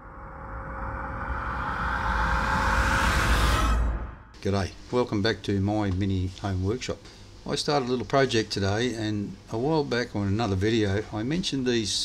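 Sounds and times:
low rumble: 0.0s - 4.4s.

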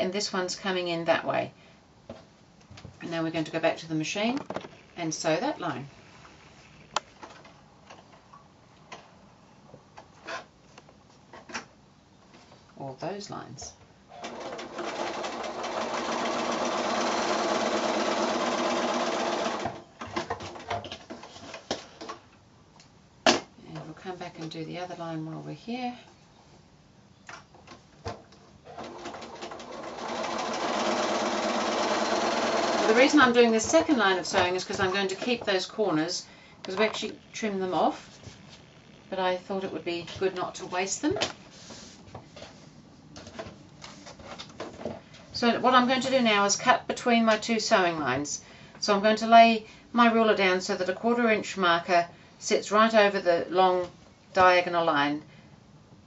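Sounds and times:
sewing machine motor running: 14.1s - 19.8s, 28.7s - 33.1s.

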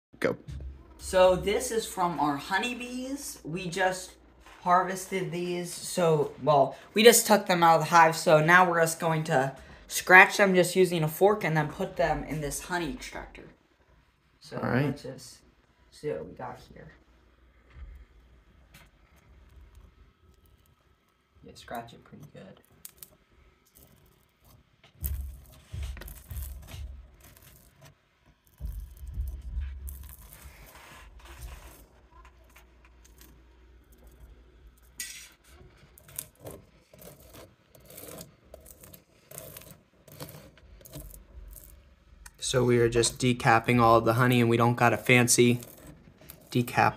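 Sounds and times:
fork scratching honeycomb wax: 23.7s - 46.9s.

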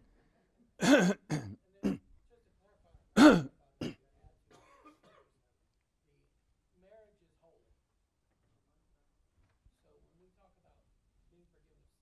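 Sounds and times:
man coughing: 0.8s - 2.0s, 3.2s - 4.0s.

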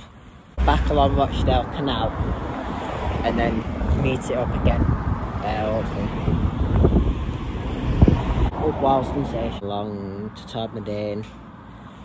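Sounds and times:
wind buffeting microphone: 0.8s - 9.5s.

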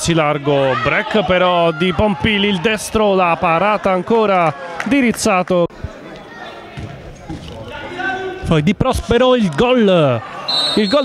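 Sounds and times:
players calling: 9.5s - 11.0s.

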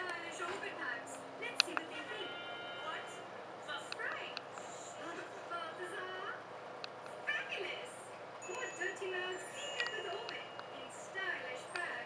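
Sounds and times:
voice from television speaker: 0.0s - 6.5s, 7.2s - 12.0s.

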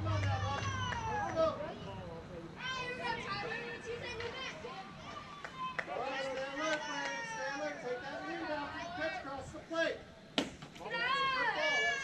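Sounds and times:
children calling out and chattering: 0.0s - 9.2s, 10.8s - 12.0s.

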